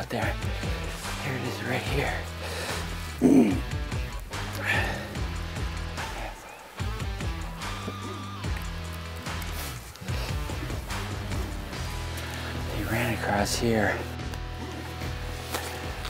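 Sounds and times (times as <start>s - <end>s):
music with bass line and beat: 0.0s - 16.0s.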